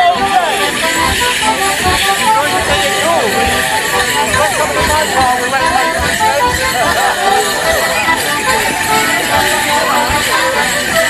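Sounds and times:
folk musicians playing: 0:00.0 - 0:11.0
leg bells jingling: 0:00.0 - 0:11.0
people chatting: 0:00.0 - 0:11.0.

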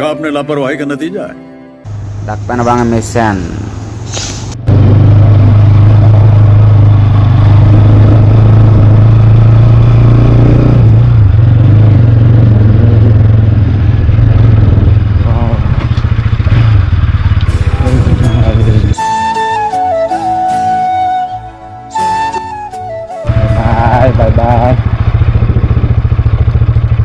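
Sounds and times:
motorcycle engine running: 0:04.6 - 0:19.0, 0:23.2 - 0:27.0.

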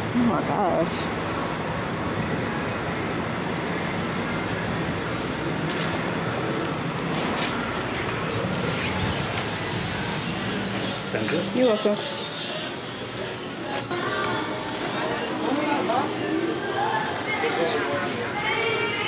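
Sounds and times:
diesel engines idling: 0:00.0 - 0:17.1.

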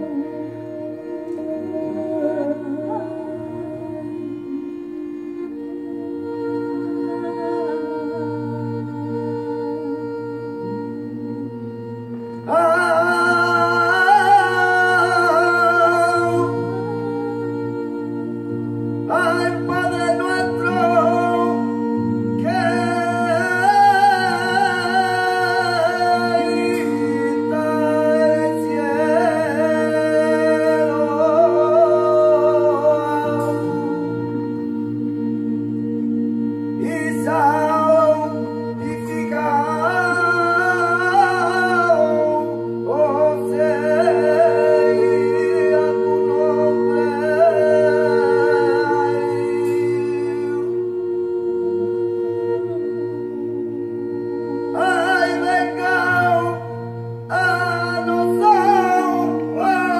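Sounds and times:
person singing with vibrato: 0:00.0 - 0:59.9
sustained low backing notes: 0:00.0 - 0:59.9.

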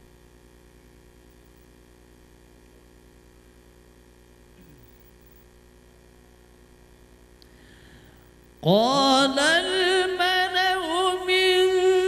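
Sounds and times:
man reciting melodically: 0:08.6 - 0:12.0.

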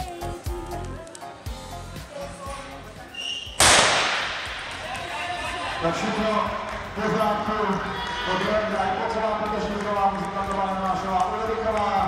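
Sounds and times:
starting pistol crack: 0:03.6 - 0:04.6.

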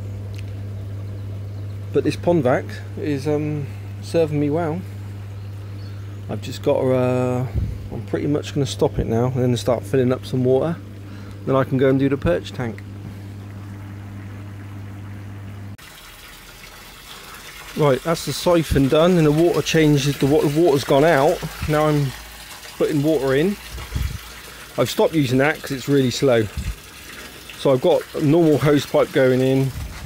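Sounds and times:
pond vacuum humming: 0:00.0 - 0:30.0.

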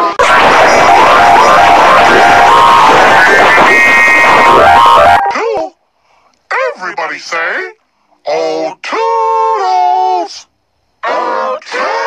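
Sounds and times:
pitch-shifted cartoon voice howl: 0:00.0 - 0:05.8, 0:11.0 - 0:12.0.

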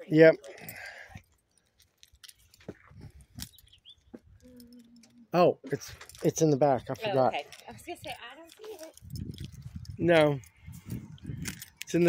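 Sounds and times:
footsteps on concrete: 0:02.5 - 0:03.5.

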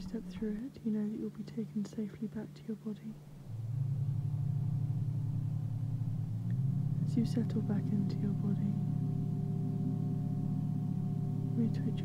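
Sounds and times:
low pulsing drone: 0:00.0 - 0:12.0.

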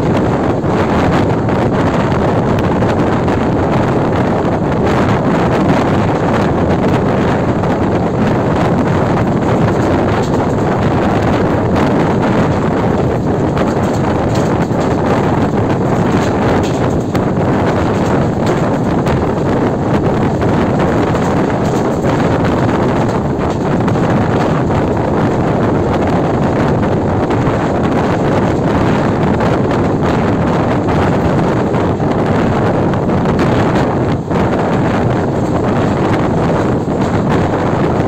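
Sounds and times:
train rumbling on track: 0:00.0 - 0:38.0
wind noise on microphone: 0:00.0 - 0:38.0.

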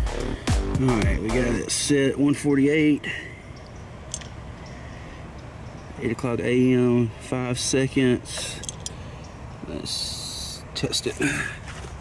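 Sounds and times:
steady background hiss: 0:00.1 - 0:12.0.

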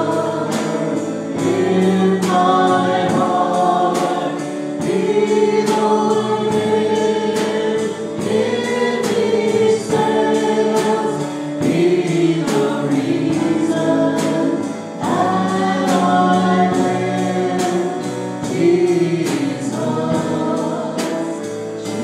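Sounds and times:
group singing in harmony: 0:00.0 - 0:22.0.

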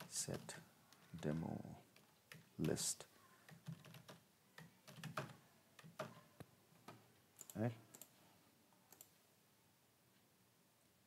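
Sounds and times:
computer keyboard keystrokes: 0:00.0 - 0:02.8, 0:03.4 - 0:06.2.

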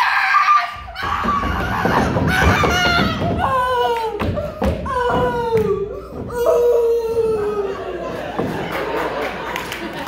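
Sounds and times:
wordless vocal cries: 0:00.0 - 0:08.1
body thumping on wooden stage: 0:00.9 - 0:06.6.

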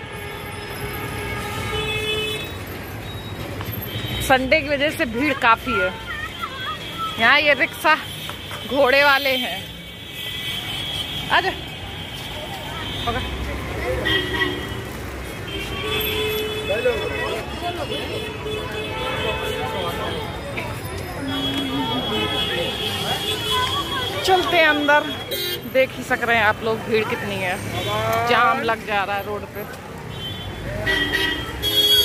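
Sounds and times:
vehicle horn: 0:00.0 - 0:02.6, 0:15.4 - 0:20.4, 0:21.2 - 0:25.7, 0:30.1 - 0:32.0
street traffic noise: 0:00.0 - 0:32.0
people talking: 0:16.7 - 0:29.8.

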